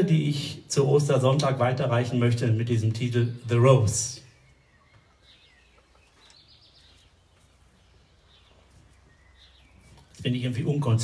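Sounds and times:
faint bird chirps: 4.1s - 10.2s.

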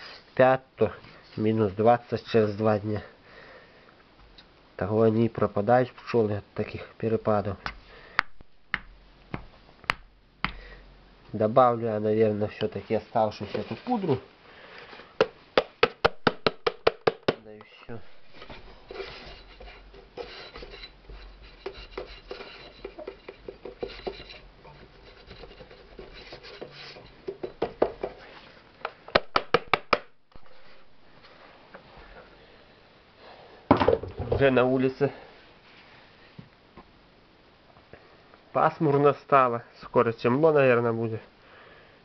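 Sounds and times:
soft tapping and scraping: 12.5s - 14.2s, 17.6s - 29.0s.

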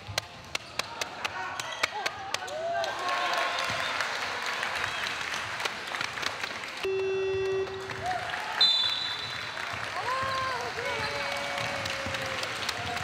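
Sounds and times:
crowd shouting and clapping: 0.0s - 13.0s
buzzer horn tone: 6.8s - 8.0s
short high whistle: 8.6s - 9.4s.

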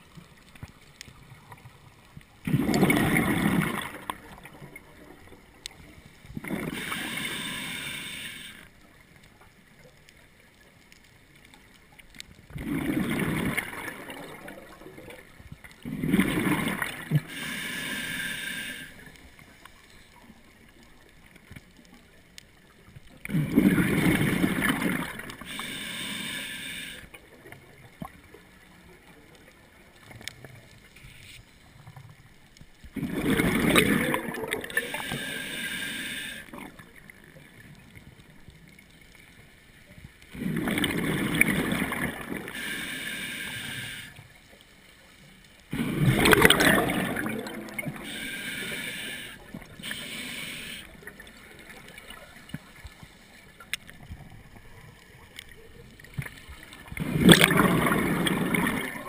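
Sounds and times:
exhaled bubbles rushing: 2.4s - 5.3s, 12.5s - 15.2s, 15.8s - 17.3s, 23.3s - 25.4s, 33.0s - 34.9s, 40.4s - 42.5s, 45.7s - 48.1s, 56.1s - 59.0s
regulator inhale hiss: 6.6s - 8.9s, 17.1s - 19.6s, 25.3s - 27.2s, 34.6s - 36.7s, 42.4s - 44.3s, 47.8s - 51.4s.

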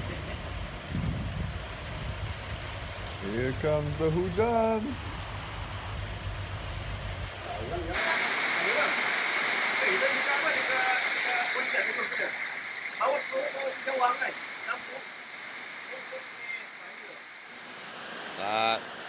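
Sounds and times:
low rumble: 0.0s - 7.9s
heavy rain pouring: 0.0s - 19.0s.

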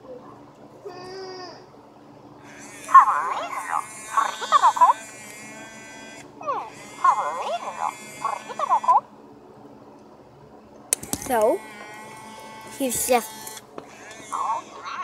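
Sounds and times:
toy chirping and warbling: 2.9s - 5.0s, 6.6s - 9.0s, 14.3s - 15.0s.

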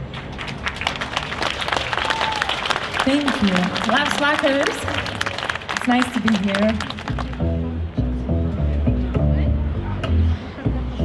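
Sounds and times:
audience applauding: 0.0s - 7.5s.

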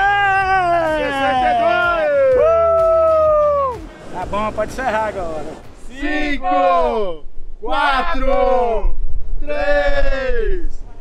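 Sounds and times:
men shouting cheers: 0.0s - 3.9s, 5.9s - 8.8s
background music with bass: 0.0s - 6.7s.

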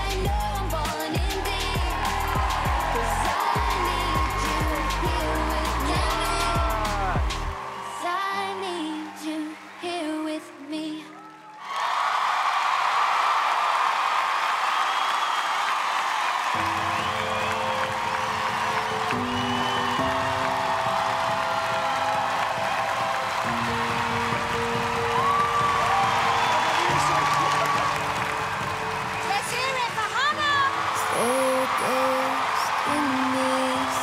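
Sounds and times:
audience applauding and cheering: 0.0s - 34.0s.

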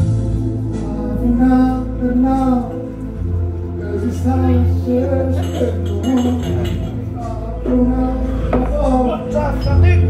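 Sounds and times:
backing music with steady bass: 0.0s - 10.0s
man singing into a microphone: 3.8s - 9.8s.

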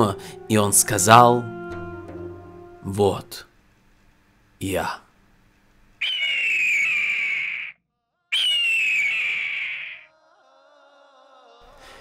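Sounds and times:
shofar blasts: 0.0s - 3.4s
faint music: 0.0s - 3.6s.

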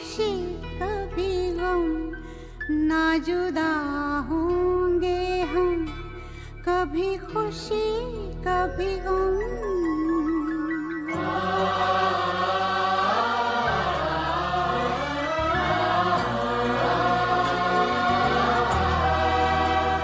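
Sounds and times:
wordless choir: 11.0s - 20.0s.

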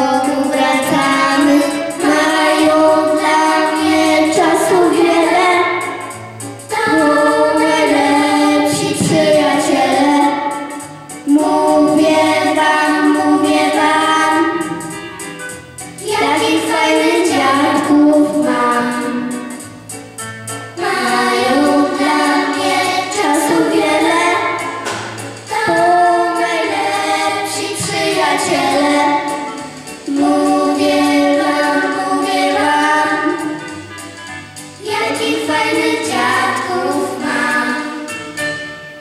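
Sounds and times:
children singing: 0.0s - 15.3s, 16.0s - 19.6s, 20.8s - 34.0s, 34.8s - 38.1s.

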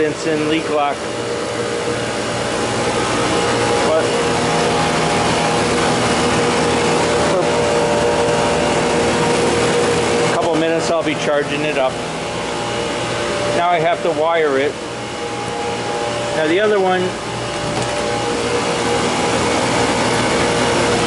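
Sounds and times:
vacuum pump motor hum: 0.0s - 21.0s.

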